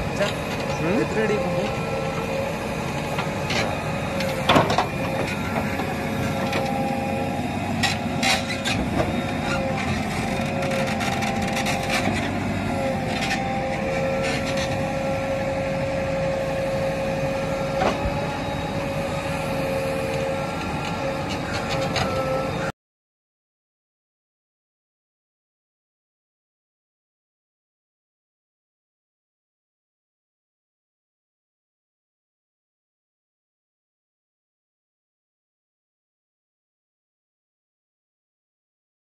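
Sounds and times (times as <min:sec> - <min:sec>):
backhoe loader engine whine: 0:00.0 - 0:22.8.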